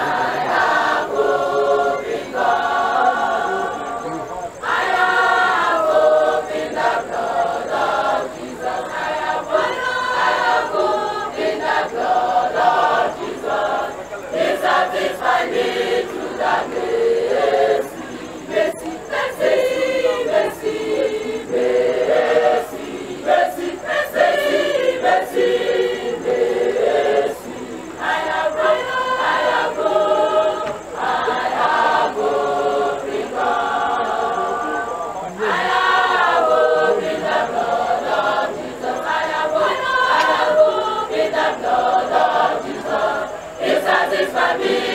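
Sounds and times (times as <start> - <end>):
choir of young voices singing: 0.0 - 44.9.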